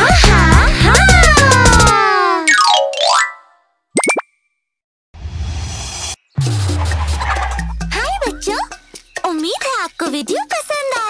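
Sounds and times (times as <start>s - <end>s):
children's song music: 0.0s - 3.6s, 7.6s - 11.0s.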